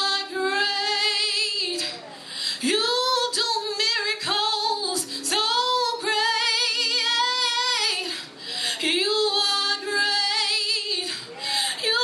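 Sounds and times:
woman singing gospel: 0.0s - 12.0s.

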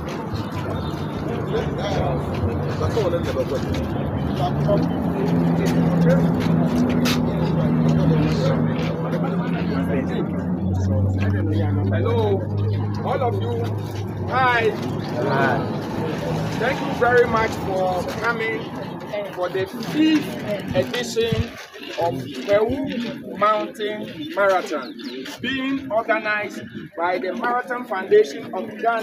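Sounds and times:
crowd chatter: 0.0s - 29.0s.

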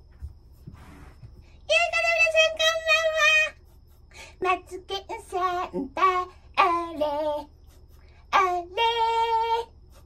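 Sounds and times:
high-pitched voice singing: 1.7s - 3.6s, 4.4s - 7.6s, 8.3s - 9.7s.

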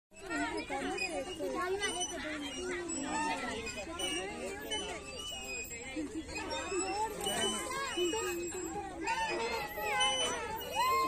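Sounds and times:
children chattering and calling out: 0.1s - 11.0s.

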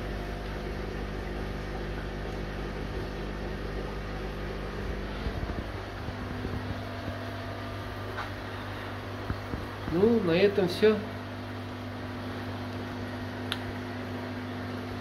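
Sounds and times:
aquarium pump humming: 0.0s - 15.0s.

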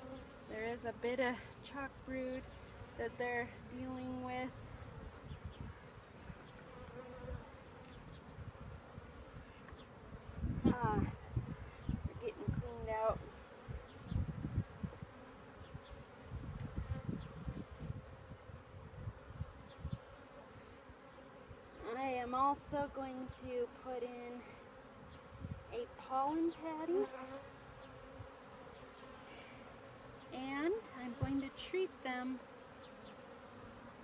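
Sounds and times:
bee buzzing past close: 0.0s - 22.3s, 23.7s - 34.0s
honey bees buzzing: 0.0s - 34.0s.

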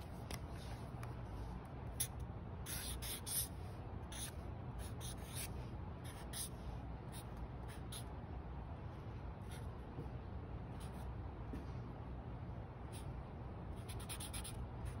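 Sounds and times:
marker scratching on paper: 1.9s - 8.1s, 10.8s - 11.1s, 13.8s - 15.0s.

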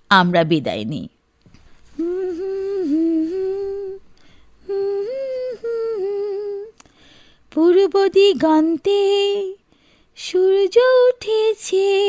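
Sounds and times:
person humming a tune: 2.0s - 4.0s, 4.6s - 6.9s.

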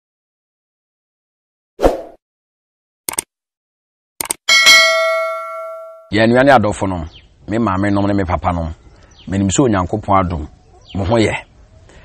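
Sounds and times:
notification bell ding: 4.5s - 6.2s.

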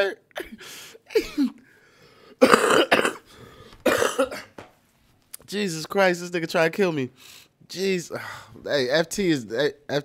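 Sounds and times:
man coughing: 0.3s - 1.6s, 2.4s - 4.6s.

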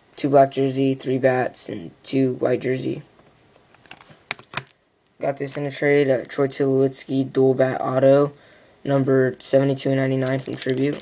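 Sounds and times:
trading cards clicking and tapping: 3.8s - 4.8s, 10.2s - 11.0s.

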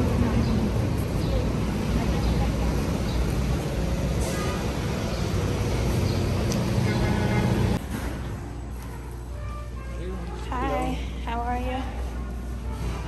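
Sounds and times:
road traffic rumble: 0.0s - 9.9s.

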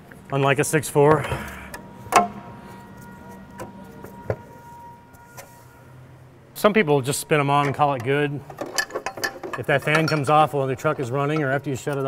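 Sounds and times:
faint steady hum: 0.0s - 12.0s
light metal clicks and knocks: 7.6s - 10.4s.

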